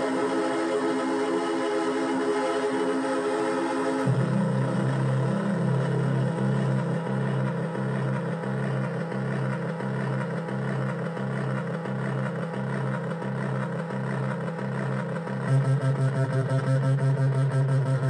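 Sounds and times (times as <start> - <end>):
pulsing buzzing synth bass: 0.0 - 18.0.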